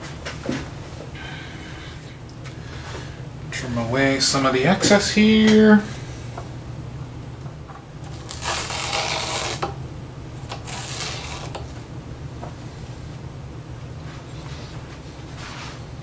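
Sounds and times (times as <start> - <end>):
scissors cutting foam: 8.1 - 9.7, 10.5 - 11.7.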